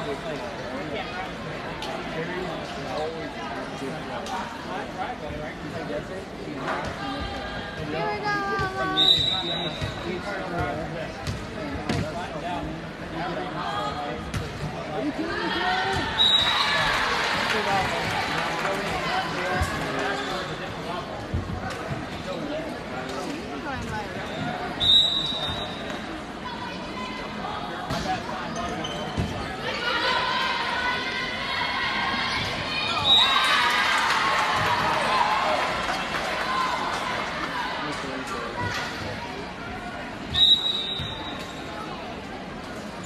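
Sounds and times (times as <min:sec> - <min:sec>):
crowd chatter and calls: 0:00.0 - 0:43.0
referee whistle blasts: 0:09.0 - 0:10.0, 0:16.2 - 0:16.6, 0:24.8 - 0:25.8, 0:40.3 - 0:41.6.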